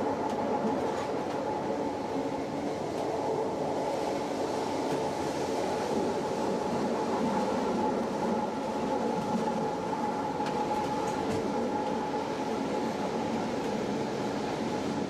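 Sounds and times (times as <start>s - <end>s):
train high whine: 0.0s - 15.0s
wheels rumbling on rail: 0.0s - 15.0s.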